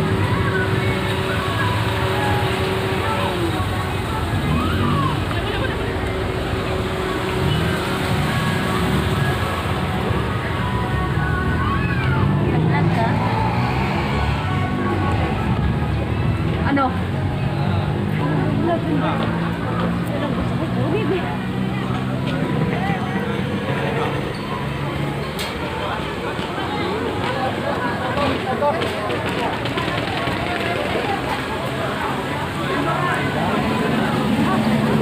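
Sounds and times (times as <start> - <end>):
vehicle engine idling: 0.0 - 19.1
crowd chatter: 0.0 - 35.0
people: 0.0 - 35.0
traffic: 0.0 - 35.0.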